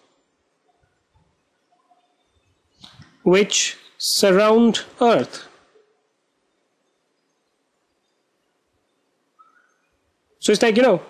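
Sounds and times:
faint short chirp: 0:09.0 - 0:09.9.

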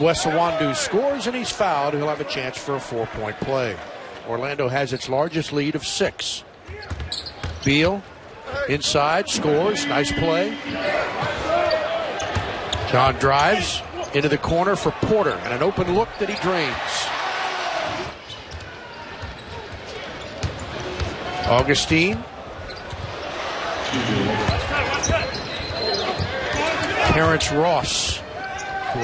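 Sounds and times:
crowd noise: 0:00.0 - 0:29.0
indistinct voices: 0:08.8 - 0:12.1
crowd murmuring: 0:08.9 - 0:12.2, 0:23.8 - 0:25.0.

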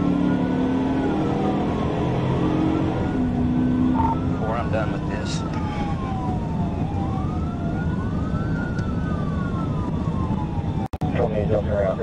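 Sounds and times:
car engine accelerating: 0:00.0 - 0:10.5
police siren wailing: 0:00.0 - 0:12.0.

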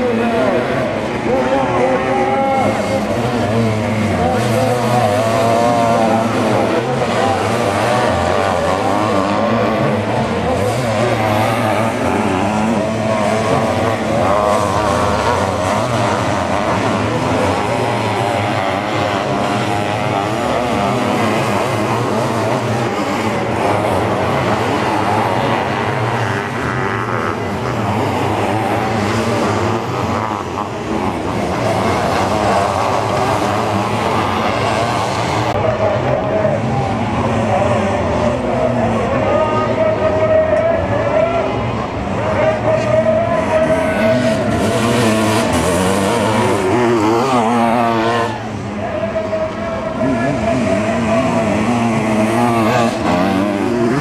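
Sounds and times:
racing motorcycle engines revving: 0:00.0 - 0:54.0.

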